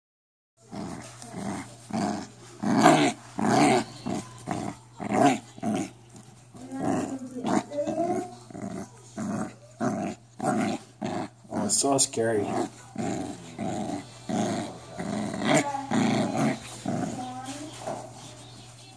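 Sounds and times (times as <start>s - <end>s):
puppy growling: 0.6s - 18.4s.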